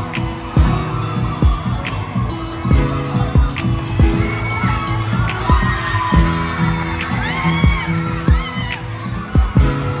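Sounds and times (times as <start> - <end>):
audience shouting and cheering: 0.0 - 10.0
dance music with steady beat: 5.3 - 10.0.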